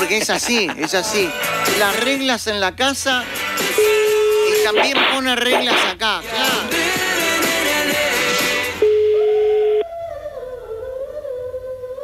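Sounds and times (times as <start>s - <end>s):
telephone ringback tone: 8.8s - 9.8s.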